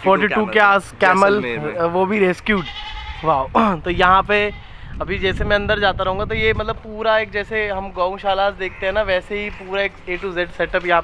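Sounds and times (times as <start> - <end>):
person making vocal sounds: 3.5 - 3.8.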